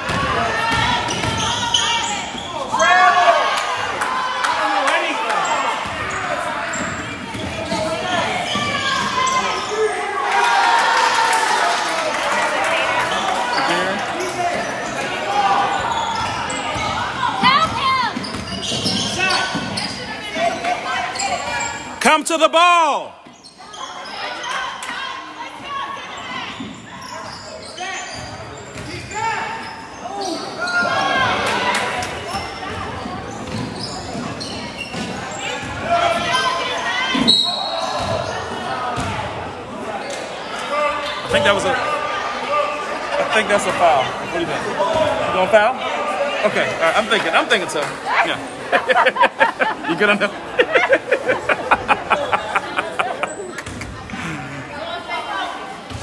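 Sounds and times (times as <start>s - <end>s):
voices of players and spectators: 0.0s - 56.0s
shoe squeak with gliding pitch: 15.8s - 20.1s, 23.3s - 24.3s, 37.2s - 38.1s.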